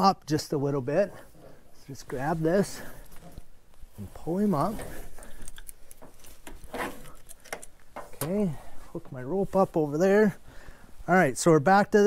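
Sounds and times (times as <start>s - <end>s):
hoist rope being hauled: 4.0s - 9.7s.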